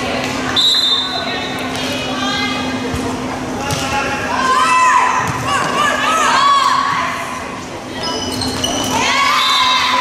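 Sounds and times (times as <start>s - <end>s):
crowd chatter echoing: 0.0s - 10.0s.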